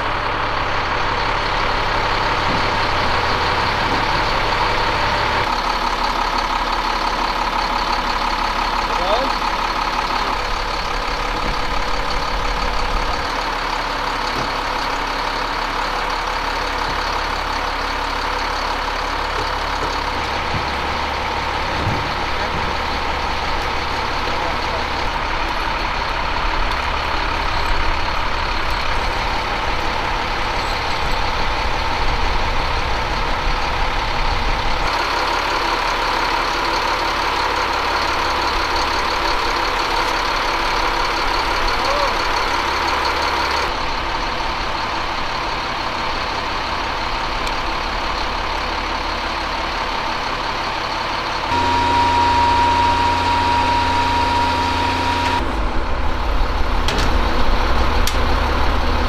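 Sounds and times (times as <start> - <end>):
diesel engine running: 0.0 - 59.0
high-pitched tone: 51.5 - 55.5.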